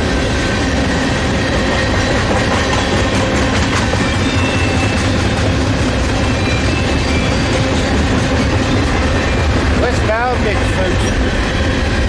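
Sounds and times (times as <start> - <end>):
freight train rumbling past: 0.0 - 12.0.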